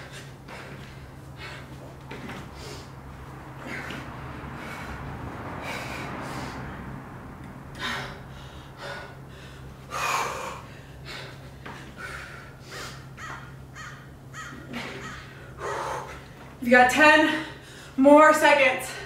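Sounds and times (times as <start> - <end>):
woman breathing hard: 0.0 - 16.6, 17.2 - 18.0
steady low hum: 0.0 - 19.0.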